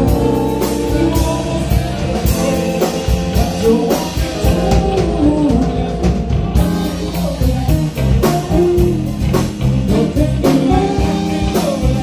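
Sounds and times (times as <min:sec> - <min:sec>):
electric bass guitar line: 0:00.0 - 0:12.0
steady drum beat: 0:00.0 - 0:12.0.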